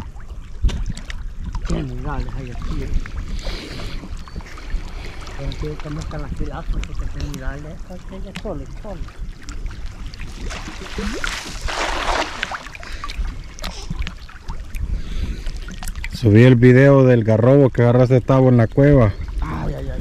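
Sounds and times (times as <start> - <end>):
water sloshing: 0.0 - 17.4
cast net splashing into water: 10.3 - 12.8.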